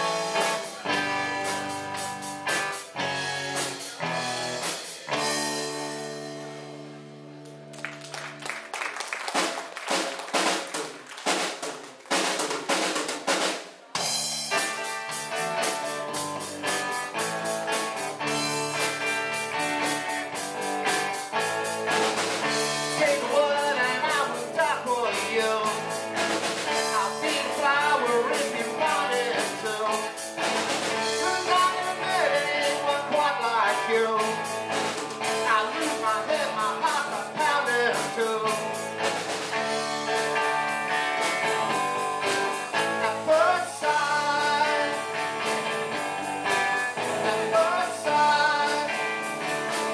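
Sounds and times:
drum kit playing: 0.0s - 7.1s, 8.0s - 49.9s
electric guitars and bass: 0.0s - 8.7s, 14.0s - 49.9s.

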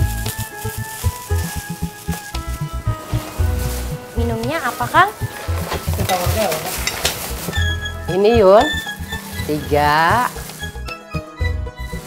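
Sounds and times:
comedy background music: 0.0s - 12.0s.

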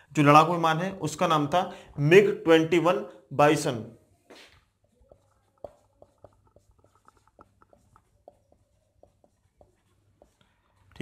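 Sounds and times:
marker squeaking on whiteboard: 3.6s - 11.0s.

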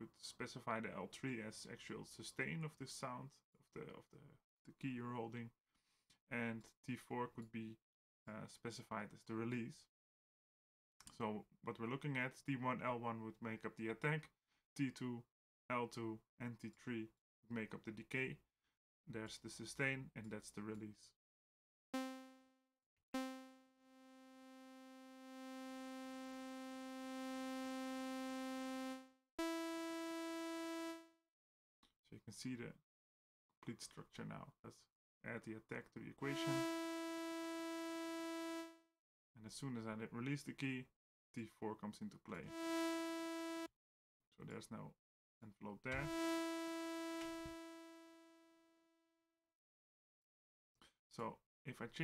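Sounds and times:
synthesizer notes: 22.0s - 22.4s, 23.2s - 31.1s, 36.2s - 38.8s, 42.5s - 43.7s, 45.9s - 48.3s.

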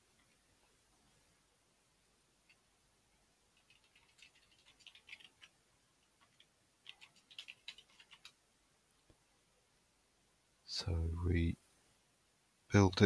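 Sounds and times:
typing on computer keyboard: 3.6s - 5.6s, 6.2s - 8.4s.

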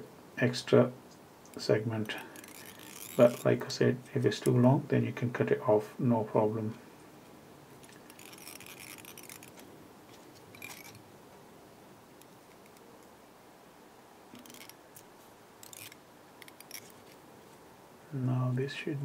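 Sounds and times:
soft rustling of foam and thread: 0.0s - 5.0s, 6.4s - 13.4s, 14.2s - 19.0s.

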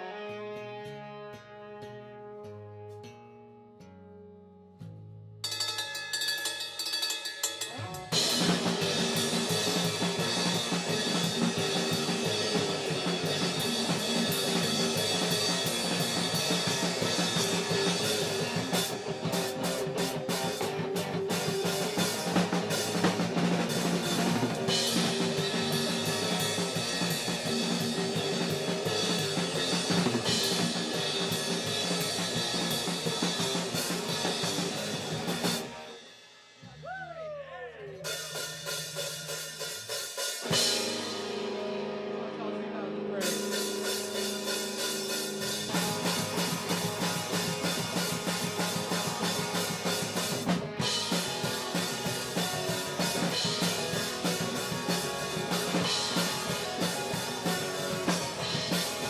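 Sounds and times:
drum kit bass and snare: 5.4s - 42.5s, 43.1s - 59.0s
live band playing: 7.5s - 36.8s, 37.6s - 59.0s.

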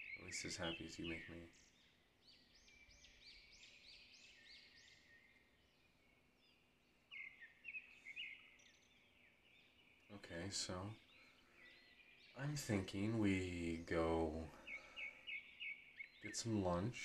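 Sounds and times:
bird chirping: 0.0s - 17.0s.

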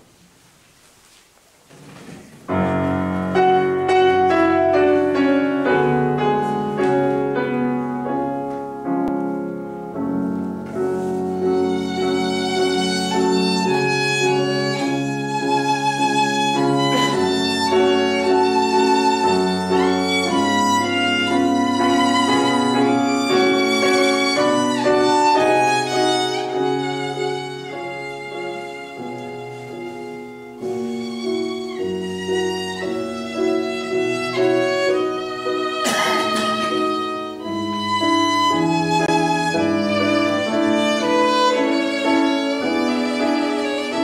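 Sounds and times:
piano chords: 2.4s - 44.0s
violin melody with vibrato: 2.6s - 8.4s, 10.3s - 44.0s.

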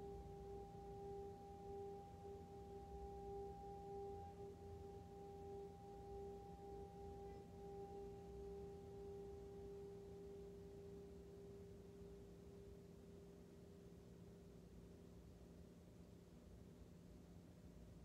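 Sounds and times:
singing bowl ringing: 0.0s - 14.0s.

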